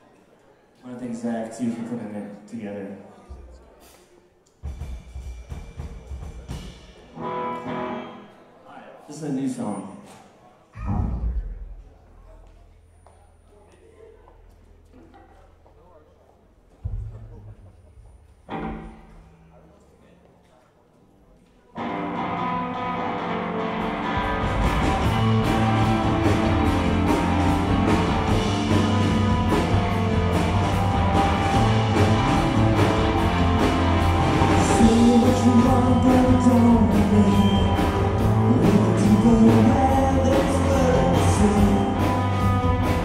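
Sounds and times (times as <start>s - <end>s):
rock band playing: 4.6s - 8.3s, 21.8s - 43.0s
bass guitar rumble: 24.1s - 43.0s.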